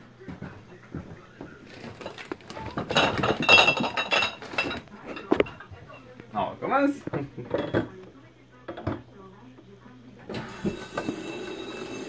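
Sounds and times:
glass bottles clinking: 1.7s - 6.0s, 10.5s - 12.0s.

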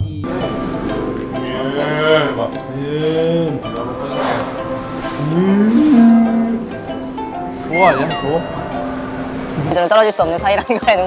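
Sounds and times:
man imitating cow moo: 1.4s - 6.9s.

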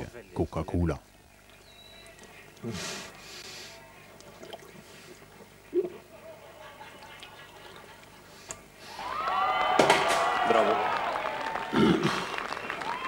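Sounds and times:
person swallowing: 5.7s - 6.0s
crowd cheering: 8.8s - 13.0s.

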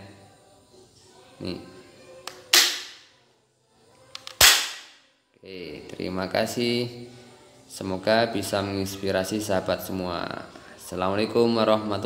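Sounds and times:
toy blaster shot: 4.4s - 4.9s.

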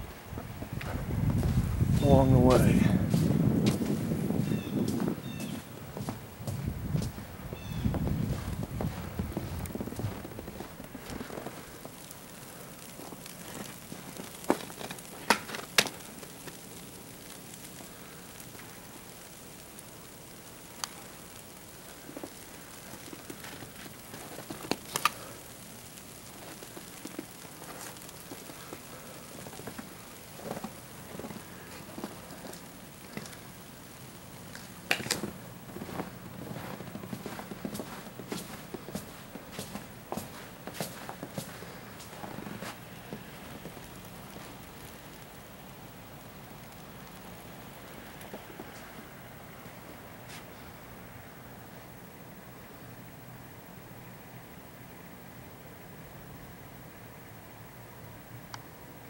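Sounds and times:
hiss of falling snow: 0.0s - 57.2s.

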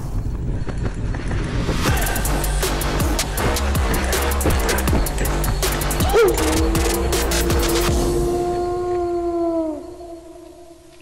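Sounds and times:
wolf howl: 6.0s - 11.0s.

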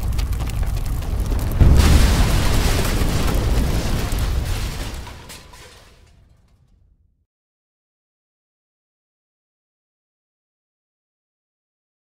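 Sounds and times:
fire noise: 0.0s - 6.3s
explosion boom: 0.0s - 6.6s.

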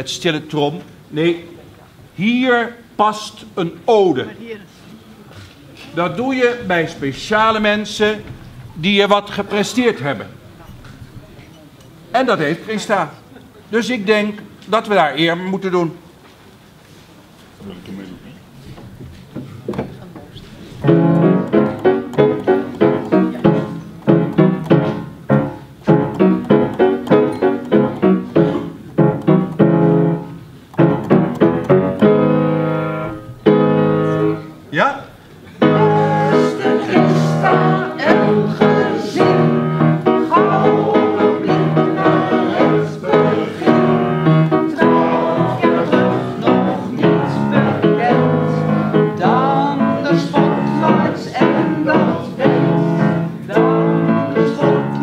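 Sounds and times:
piano chords: 6.2s - 11.4s, 20.8s - 34.7s, 35.6s - 55.0s
person singing: 35.6s - 44.0s, 44.7s - 55.0s.

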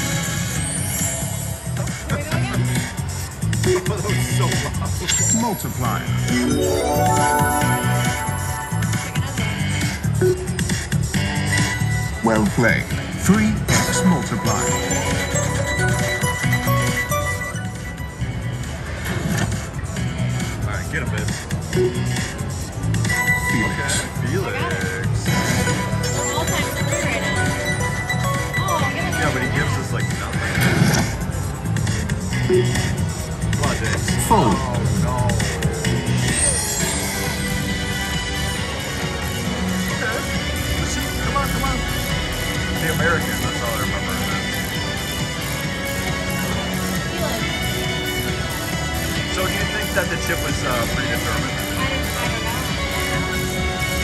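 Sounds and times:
slot machine game music: 4.9s - 10.7s, 13.7s - 18.5s, 25.3s - 30.4s
casino background noise: 5.0s - 8.7s.

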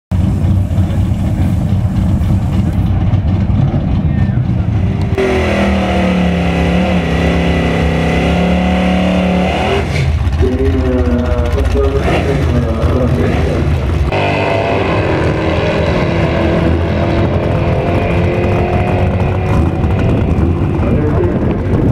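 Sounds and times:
car engine revving: 0.1s - 21.9s.

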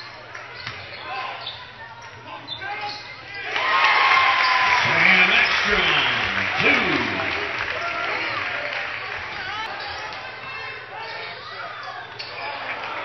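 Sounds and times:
crowd voices: 2.8s - 13.0s
crowd cheering and shouting: 3.5s - 8.3s.

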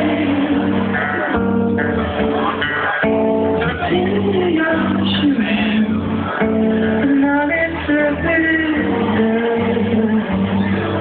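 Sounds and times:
acoustic guitar strumming: 0.0s - 11.0s
bass guitar: 0.0s - 11.0s.

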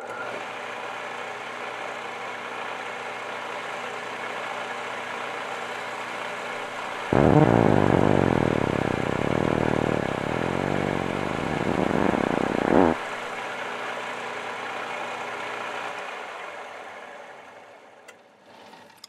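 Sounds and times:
lathe spinning down: 7.1s - 13.0s.

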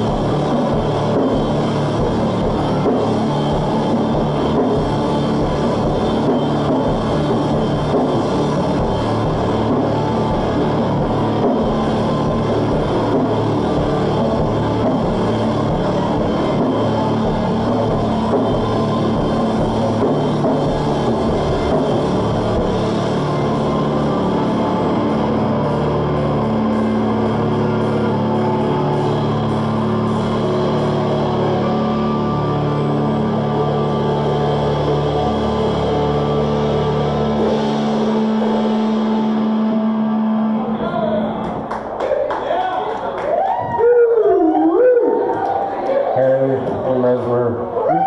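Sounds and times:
droning electric guitars: 0.0s - 48.0s
person howling through pa: 43.6s - 45.3s.

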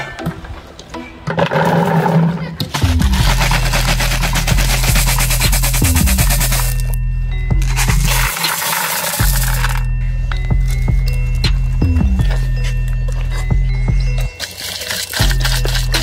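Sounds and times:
background music with bass: 0.0s - 16.0s
candies rattling in basket: 2.7s - 7.0s, 7.6s - 9.9s, 14.3s - 16.0s.

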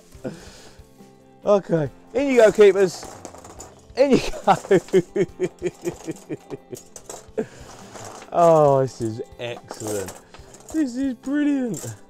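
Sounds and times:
man laughing: 4.0s - 7.6s.

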